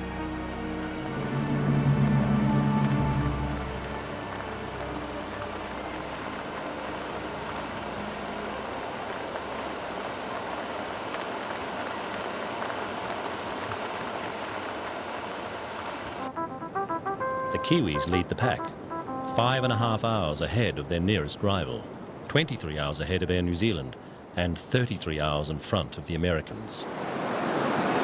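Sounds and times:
held low music chord: 0:00.0 - 0:10.4, 0:16.2 - 0:20.4
outdoor ambience hiss: 0:00.0 - 0:28.0.

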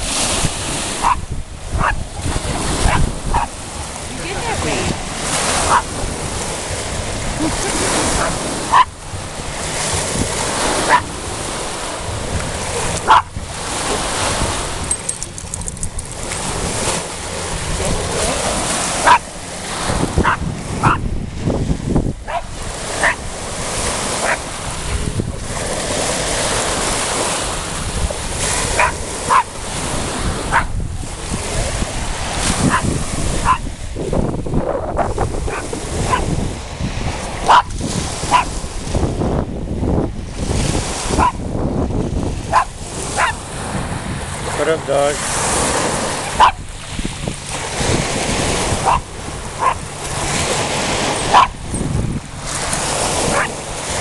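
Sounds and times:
waves washing on pebbly shore: 0:00.0 - 0:54.0
small dog barking: 0:01.0 - 0:01.2, 0:01.8 - 0:02.0, 0:02.8 - 0:03.5, 0:05.6 - 0:05.9, 0:08.1 - 0:09.0, 0:10.8 - 0:11.1, 0:13.0 - 0:13.4, 0:19.0 - 0:19.3, 0:20.2 - 0:21.0, 0:22.2 - 0:23.2, 0:24.2 - 0:24.4, 0:28.7 - 0:29.5, 0:30.5 - 0:30.7, 0:32.6 - 0:33.7, 0:35.5 - 0:36.3, 0:37.4 - 0:37.7, 0:38.3 - 0:38.5, 0:41.2 - 0:41.4, 0:42.5 - 0:43.4, 0:46.2 - 0:46.6, 0:48.8 - 0:49.8, 0:51.2 - 0:51.6, 0:53.3 - 0:53.6.

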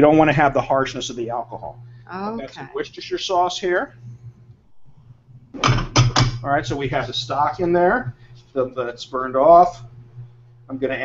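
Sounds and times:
low steady hum: 0:00.0 - 0:11.0
man's voice: 0:02.3 - 0:03.6.

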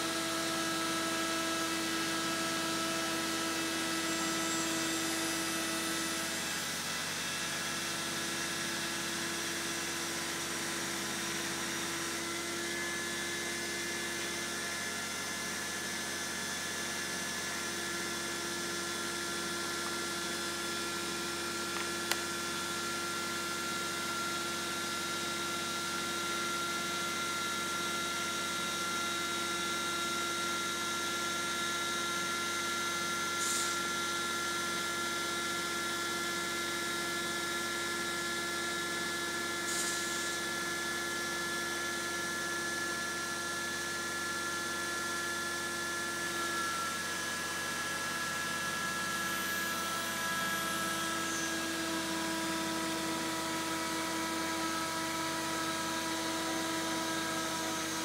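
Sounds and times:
circular saw running: 0:00.0 - 0:58.0.

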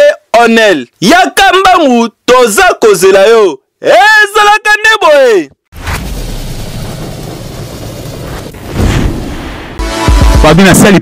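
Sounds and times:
fireball burst and rumbling rush: 0:05.8 - 0:09.8.

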